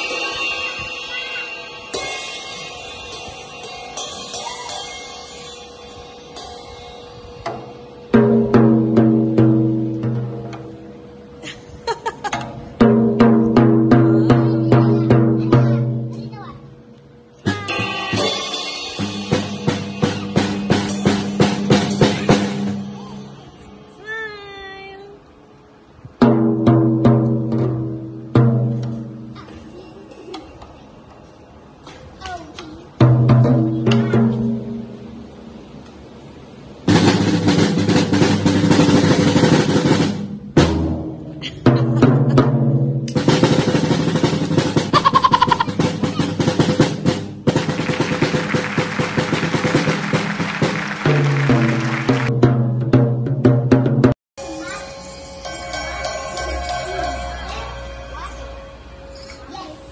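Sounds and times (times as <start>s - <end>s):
high-pitched vocal cry: 4.3s - 5.0s, 44.9s - 46.4s
drumming on toms and snare: 7.4s - 10.8s, 12.3s - 16.2s, 17.4s - 23.0s, 26.2s - 29.3s, 33.0s - 34.9s, 36.9s - 54.2s.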